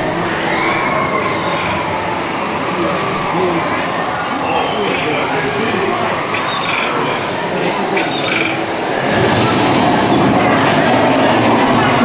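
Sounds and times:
faint voices: 0.0s - 12.0s
rushing and rumbling water channel: 0.0s - 12.0s.

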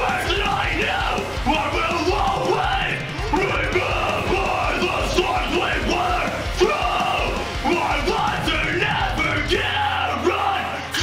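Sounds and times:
heavy band track: 0.0s - 11.0s
screamed hardcore vocals: 0.0s - 11.0s.

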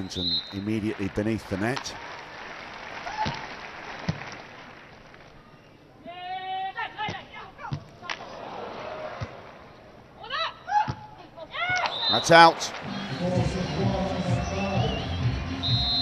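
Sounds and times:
players shouting calls: 0.0s - 1.9s, 6.0s - 9.4s, 10.1s - 16.0s
hands slapping volleyball: 3.1s - 4.5s, 10.9s - 12.0s
crowd murmur: 12.2s - 15.7s.

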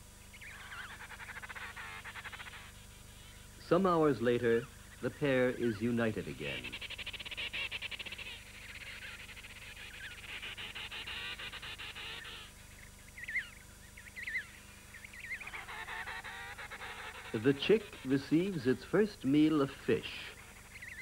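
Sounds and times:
penguins trumpeting calls: 15.2s - 19.0s.

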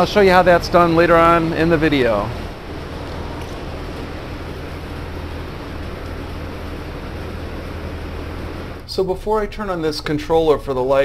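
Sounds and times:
even rushing noise: 0.0s - 8.8s
steady low hum: 0.0s - 11.0s.

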